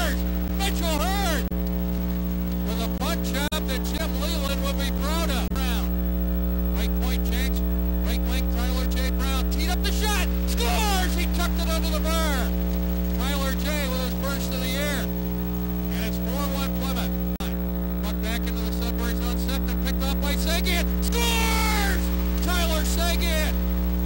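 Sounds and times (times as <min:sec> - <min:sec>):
indistinct voices: 0:00.0 - 0:01.5, 0:06.7 - 0:15.2, 0:15.9 - 0:23.6
electrical mains hum: 0:00.0 - 0:24.0.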